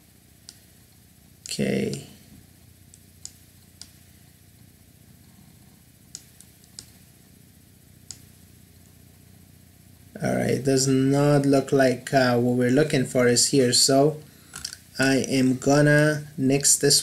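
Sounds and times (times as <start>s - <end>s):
low room hum: 0.0s - 17.0s
mouse and keyboard clicks: 6.1s - 7.0s.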